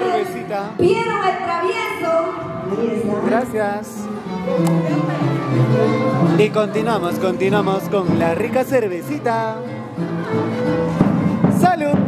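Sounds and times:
live band music: 0.0s - 12.0s
violin playing long notes: 3.2s - 11.5s.

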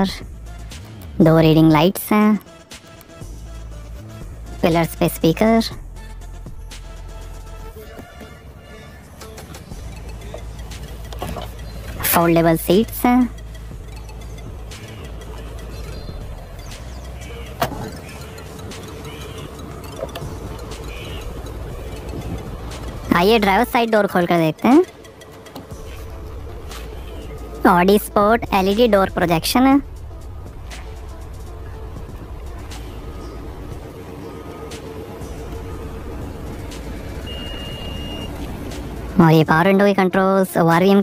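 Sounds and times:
low background rumble: 0.0s - 41.0s
seat latch click: 17.6s - 18.0s
high electronic beep: 37.2s - 38.4s.

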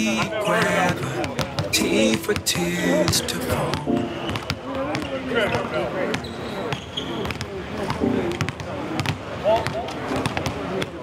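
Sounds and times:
person speaking: 0.0s - 4.2s
basketballs bouncing on hardwood: 0.6s - 1.7s, 3.7s - 10.9s.

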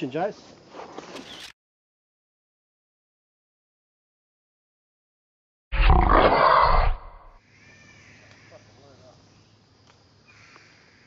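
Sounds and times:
loud gruff roar: 5.8s - 7.4s.

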